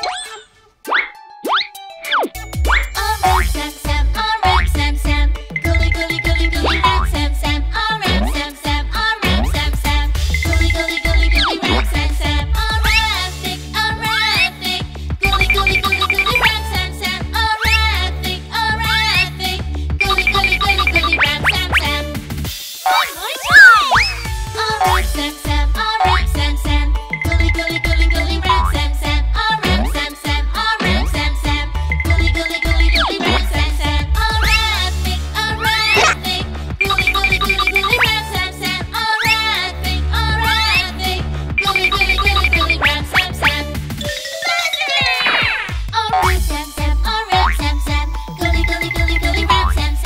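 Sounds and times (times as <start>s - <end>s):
bouncy children's song music: 0.0s - 50.0s
springy boing: 4.4s - 4.7s, 22.9s - 24.2s, 24.8s - 25.1s, 26.0s - 26.3s, 46.1s - 46.4s
cartoon whistle glides: 22.9s - 25.0s, 35.7s - 36.2s.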